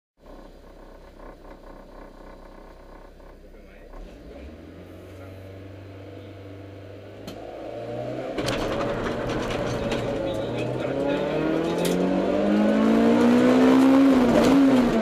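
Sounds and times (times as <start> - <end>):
car engine idling and revving: 0.2 - 15.0.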